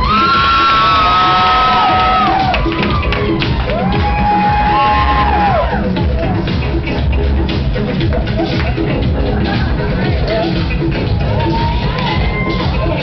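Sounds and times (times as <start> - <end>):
audience whooping: 0.0 - 6.0, 11.1 - 13.0
dance music with steady beat: 0.0 - 13.0.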